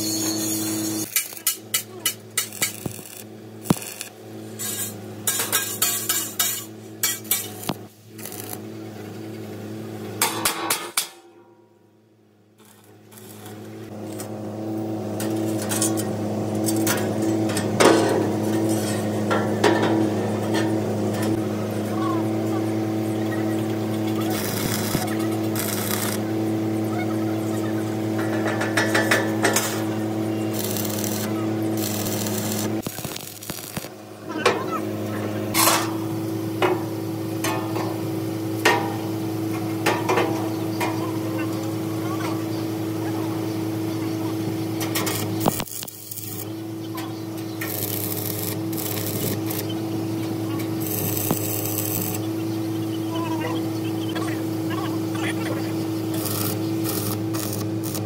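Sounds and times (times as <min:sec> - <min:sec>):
welding arc crackling: 0:00.0 - 0:08.8, 0:12.6 - 0:14.4, 0:22.6 - 0:43.0, 0:43.6 - 0:58.0
electrical hum: 0:00.0 - 0:10.3, 0:11.3 - 0:58.0.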